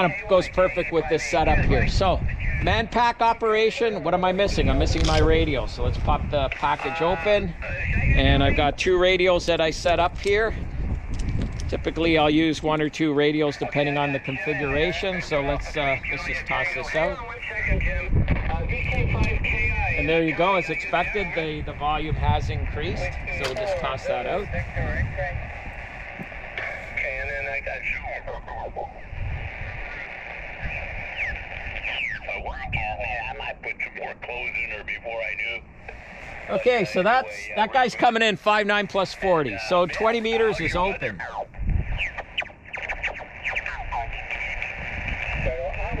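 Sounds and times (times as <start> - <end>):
radio voice from speaker: 0.0 - 10.6, 11.8 - 46.0
wind rumbling on microphone: 0.0 - 36.6, 38.9 - 46.0
falling whistles from radio tuning: 30.8 - 32.3.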